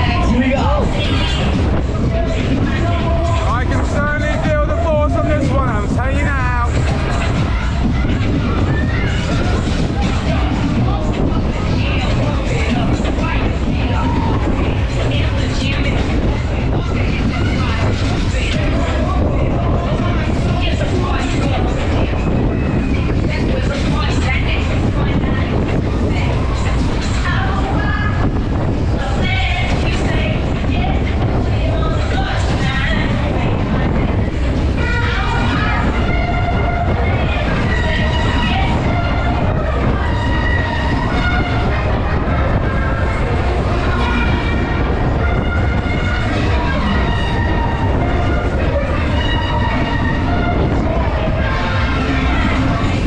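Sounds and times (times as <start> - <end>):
spinning ride rumble: 0.0 - 53.0
voices: 0.0 - 53.0
wind buffeting microphone: 0.0 - 53.0.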